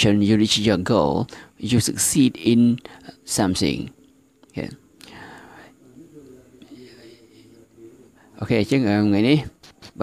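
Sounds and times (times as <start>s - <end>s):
breathy whisper: 5.0s - 6.0s, 6.6s - 8.4s.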